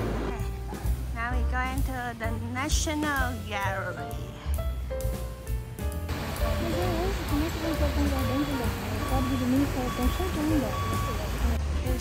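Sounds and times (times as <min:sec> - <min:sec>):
people talking: 0:01.2 - 0:04.0, 0:06.4 - 0:12.0
low traffic rumble: 0:04.5 - 0:12.0
reversing alarm beeping: 0:06.5 - 0:11.6.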